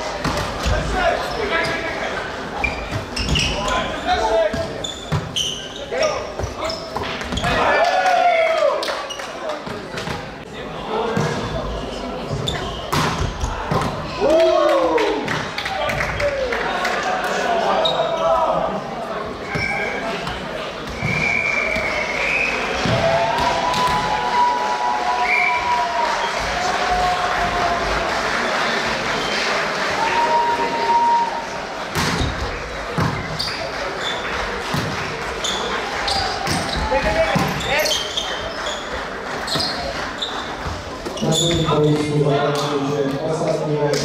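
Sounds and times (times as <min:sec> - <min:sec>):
sneakers squeaking on court: 0:02.6 - 0:07.6, 0:11.2 - 0:13.8, 0:32.0 - 0:42.1.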